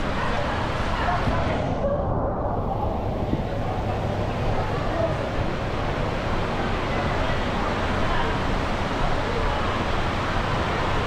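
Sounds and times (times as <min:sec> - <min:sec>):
faint indistinct voices: 0:00.0 - 0:11.0
rushing water: 0:00.0 - 0:11.0.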